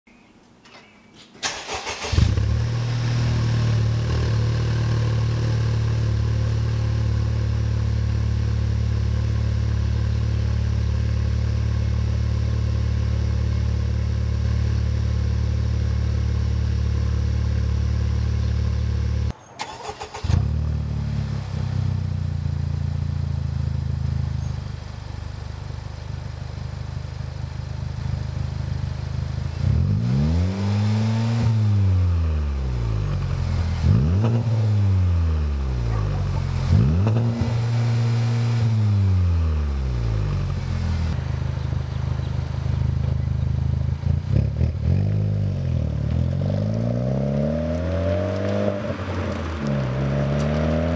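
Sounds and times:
engine cranking: 1.4s - 2.3s, 19.6s - 20.4s.

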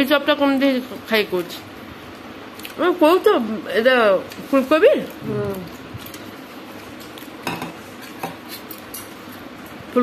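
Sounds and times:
tableware clinking: 7.4s - 8.8s.

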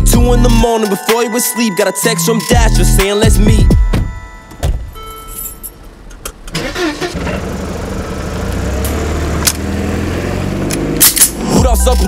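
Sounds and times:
car engine starting and idling: 2.6s - 12.0s.

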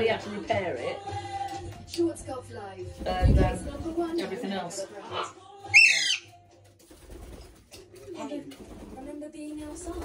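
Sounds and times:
parrot squawking: 5.0s - 6.4s.

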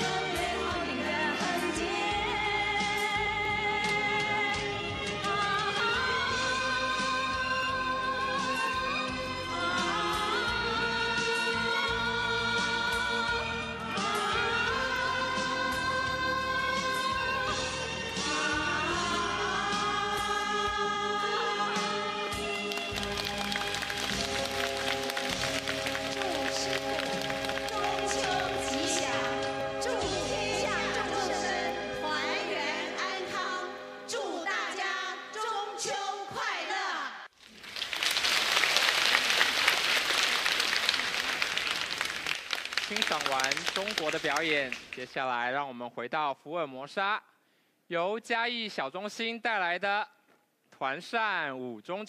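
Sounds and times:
women singing in chorus: 0.0s - 22.7s, 27.6s - 37.2s
large audience applauding: 22.5s - 29.4s, 37.4s - 45.1s.

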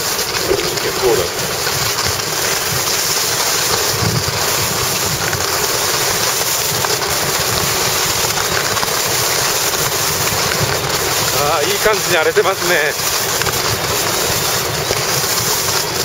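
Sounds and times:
skis scraping over snow: 0.0s - 16.0s
wind rushing over microphone: 0.2s - 2.8s.

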